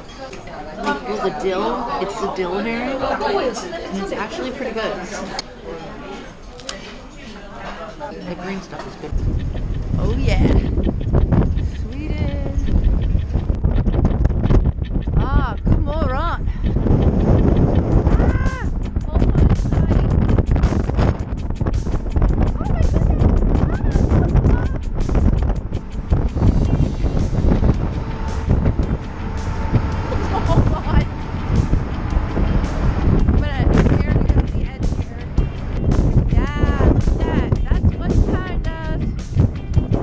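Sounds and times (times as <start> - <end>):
wind buffeting microphone: 9.1 - 40.0
background music: 17.0 - 40.0.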